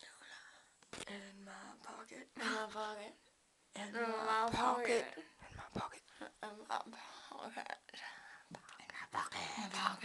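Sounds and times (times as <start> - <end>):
quiet whispering: 0.0 - 10.0.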